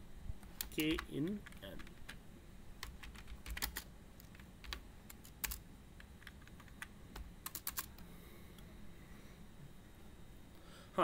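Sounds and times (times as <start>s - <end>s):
computer keyboard typing: 0.5s - 2.2s, 2.8s - 8.0s.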